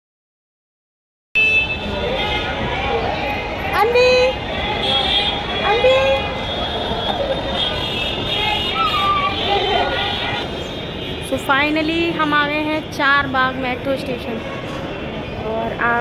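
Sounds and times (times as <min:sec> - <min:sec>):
vehicle horns: 0:01.4 - 0:11.5
steady traffic noise: 0:01.4 - 0:16.0.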